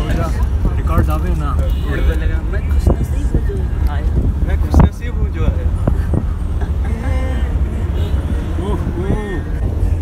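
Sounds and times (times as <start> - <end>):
car driving rumble: 0.0 - 10.0.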